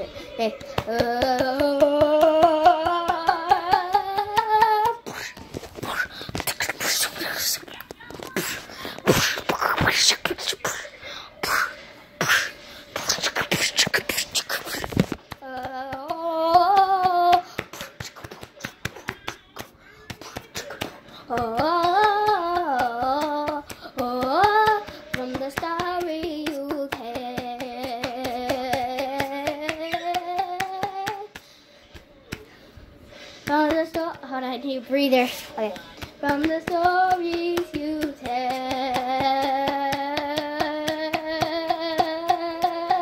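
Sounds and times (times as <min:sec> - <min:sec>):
child making breathy mouth sounds: 0:08.3 - 0:15.0
quick sharp hand taps: 0:13.0 - 0:32.5.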